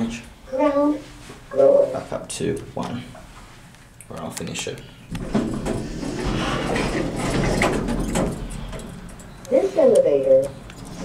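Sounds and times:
elevator doors rumbling: 5.1s - 11.0s.

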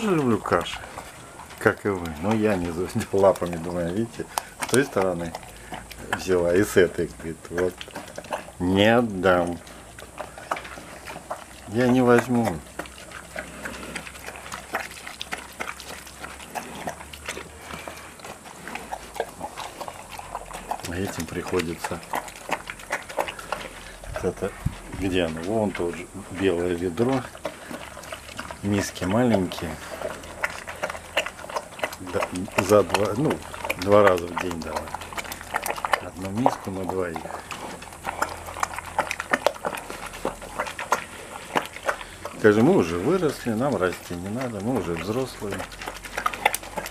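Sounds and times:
bear lapping and smacking: 0.0s - 46.9s.

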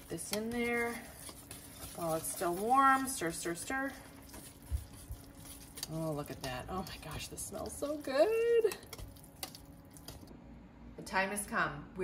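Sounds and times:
whisk stirring in a saucepan: 0.0s - 10.3s.

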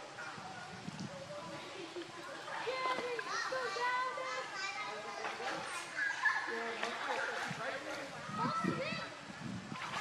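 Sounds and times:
chatter of voices with children: 0.0s - 10.0s.

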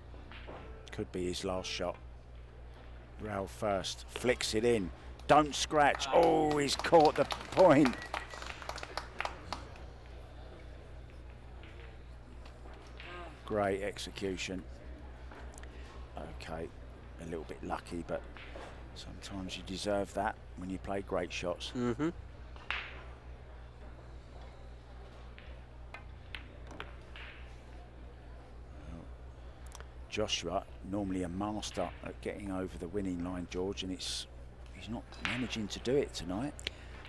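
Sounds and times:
low steady hum: 0.0s - 37.0s
pool balls clicking: 5.3s - 10.2s
crowd applause: 5.9s - 9.9s.

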